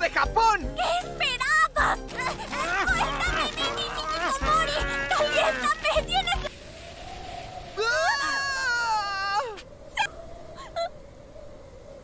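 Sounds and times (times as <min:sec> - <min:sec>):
cartoon woman wailing: 0:02.4 - 0:06.3.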